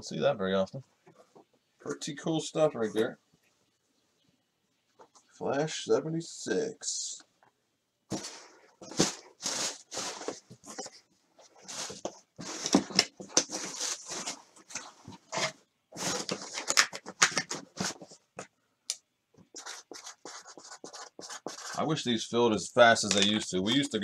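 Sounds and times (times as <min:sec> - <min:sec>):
cardboard box scraping and rustling: 0:08.1 - 0:10.9, 0:11.6 - 0:16.5.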